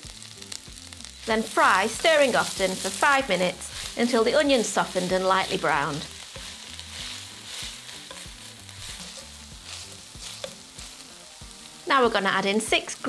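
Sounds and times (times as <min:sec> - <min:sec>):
onions sizzling in a pan: 0:00.0 - 0:13.0.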